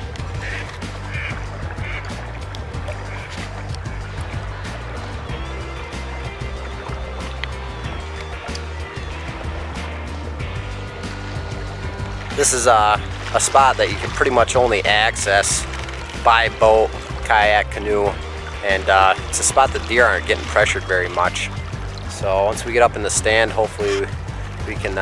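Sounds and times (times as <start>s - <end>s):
background music with bass line: 0.0s - 25.0s.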